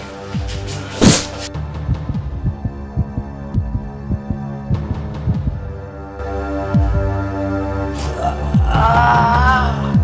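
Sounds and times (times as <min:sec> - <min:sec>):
steady low drone: 0:00.7 - 0:09.8
heartbeat-like low thumps: 0:01.0 - 0:05.9.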